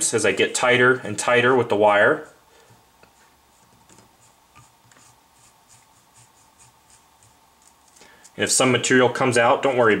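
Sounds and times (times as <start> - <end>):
soft brushing strokes: 2.6 - 9.0.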